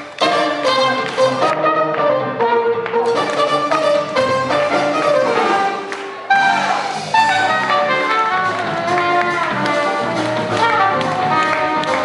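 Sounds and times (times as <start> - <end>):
trumpet melody: 0.0 - 12.0.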